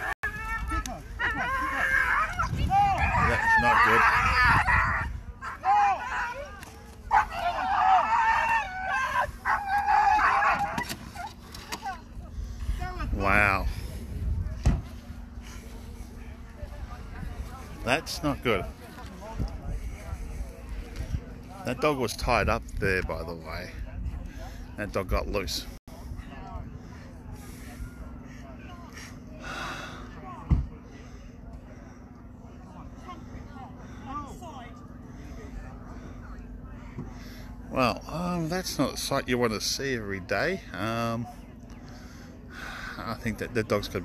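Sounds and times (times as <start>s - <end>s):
distant people talking: 0.0s - 22.0s, 25.9s - 38.4s, 40.3s - 44.0s
steady low hum: 0.0s - 44.0s
dog yelping and shrieking: 7.1s - 11.3s.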